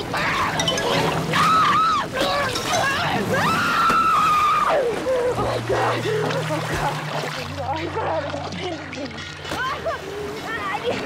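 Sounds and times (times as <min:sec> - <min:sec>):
water splashing: 0:00.0 - 0:11.0
woman screaming in terror: 0:01.3 - 0:02.2, 0:03.3 - 0:05.7.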